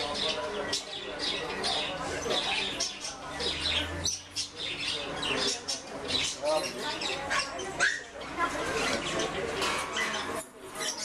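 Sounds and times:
indistinct background voices: 0.0s - 11.0s.

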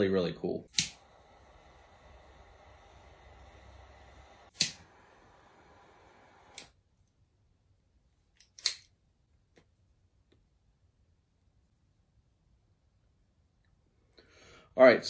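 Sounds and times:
faint room hiss: 0.0s - 15.0s
sharp clicks: 0.7s - 1.1s, 4.4s - 5.0s, 5.8s - 6.7s.

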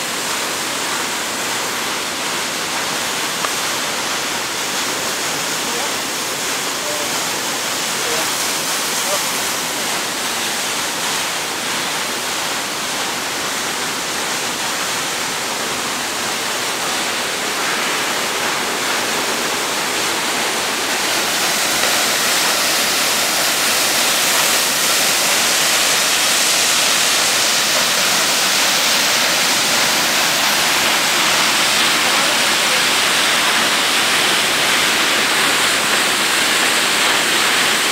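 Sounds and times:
waterfall pouring onto rocks: 0.0s - 37.9s.

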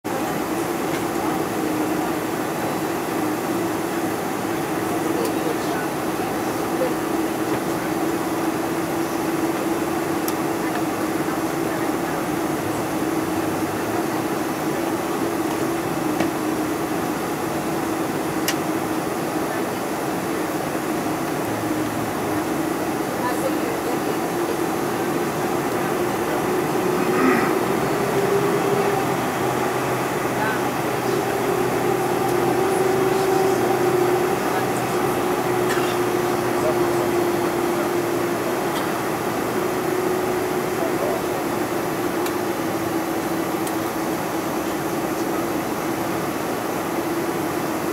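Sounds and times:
jet engines rushing in cabin: 0.0s - 47.9s.

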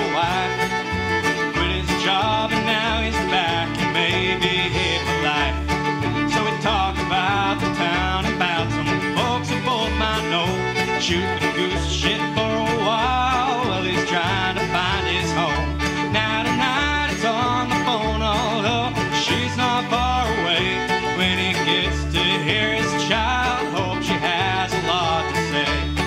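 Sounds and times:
bluegrass string instruments: 0.0s - 26.0s.

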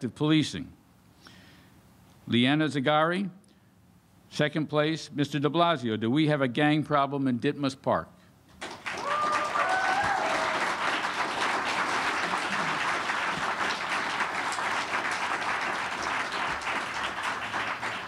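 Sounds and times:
audience applauding: 8.6s - 18.0s
voices cheering: 8.9s - 14.6s.

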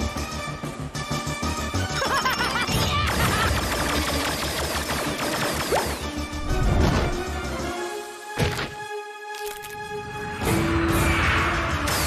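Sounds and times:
fast action music: 0.0s - 7.9s.

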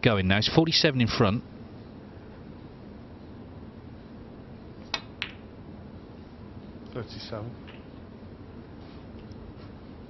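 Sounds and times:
snooker balls clicking: 4.8s - 5.5s, 7.6s - 8.0s.

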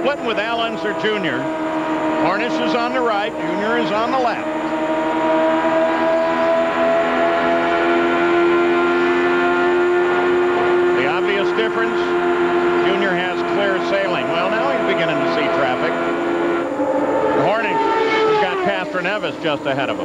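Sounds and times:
race car engines screaming: 0.0s - 20.0s.

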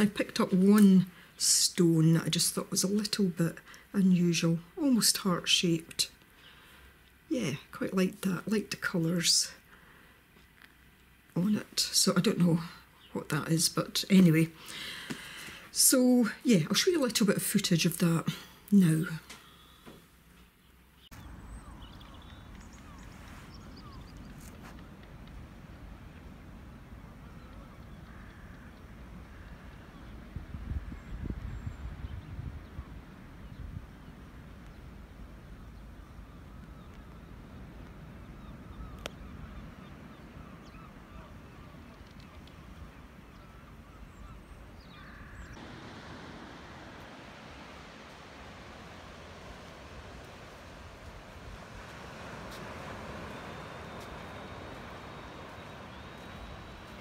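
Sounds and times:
faint bird calls: 19.2s - 25.2s, 27.0s - 30.3s, 35.4s - 57.0s
wind buffeting microphone: 21.1s - 57.0s
sea waves washing: 39.4s - 57.0s.

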